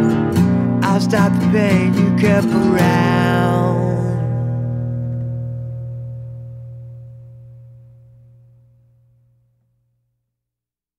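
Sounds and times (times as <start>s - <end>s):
guitar chord ringing: 0.0s - 9.5s.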